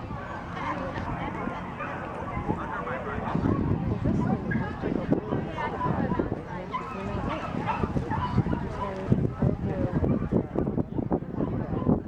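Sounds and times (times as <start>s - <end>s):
spectators chatting: 0.0s - 12.0s
dog barking: 6.7s - 9.0s.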